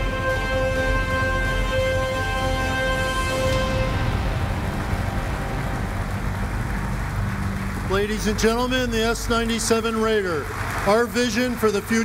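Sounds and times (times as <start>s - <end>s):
held musical chord: 0.0s - 10.0s
audience applause: 0.0s - 12.0s.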